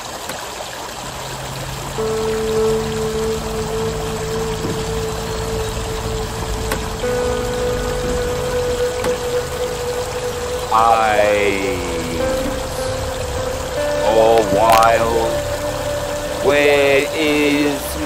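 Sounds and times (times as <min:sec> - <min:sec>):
stream water over rocks: 0:00.0 - 0:18.0
instrumental chords: 0:01.9 - 0:18.0
person singing: 0:02.0 - 0:18.0.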